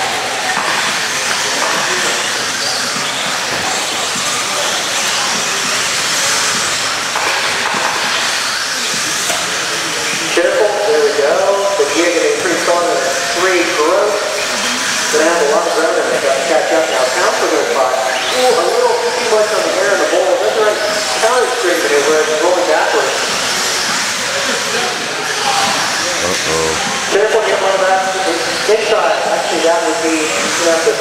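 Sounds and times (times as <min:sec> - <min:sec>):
race announcer over pa: 0:10.3 - 0:23.3, 0:26.0 - 0:31.0.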